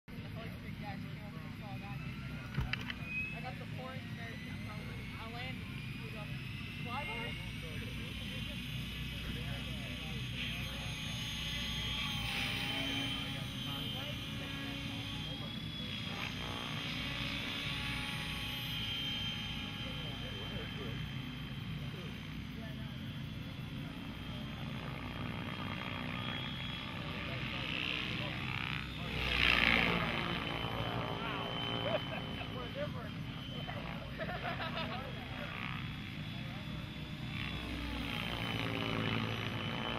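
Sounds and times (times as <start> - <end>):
rc helicopter motor whine: 0.1 - 39.9
voices murmuring: 0.1 - 39.9.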